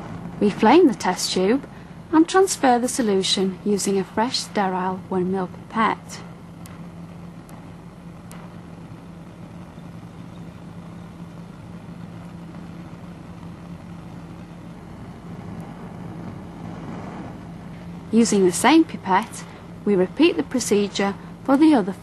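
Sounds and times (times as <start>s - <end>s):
even hiss: 0.0s - 22.0s
low hum: 0.0s - 22.0s.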